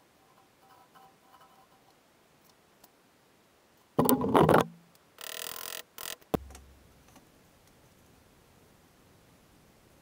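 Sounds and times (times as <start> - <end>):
sharp knock: 6.4 - 6.8.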